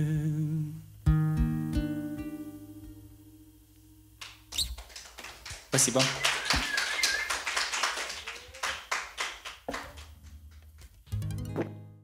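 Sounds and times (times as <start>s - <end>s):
audience applause: 4.2s - 10.6s.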